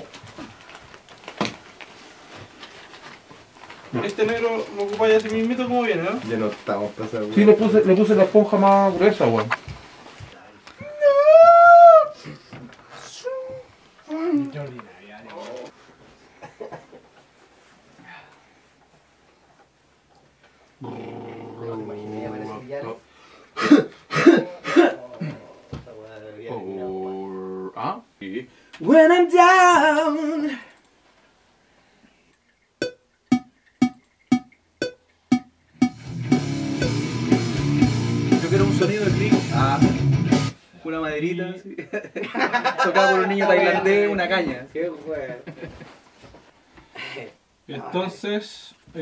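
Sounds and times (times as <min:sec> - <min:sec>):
faint handling sounds: 0:00.0 - 0:07.4
man coughing harshly: 0:23.6 - 0:25.4.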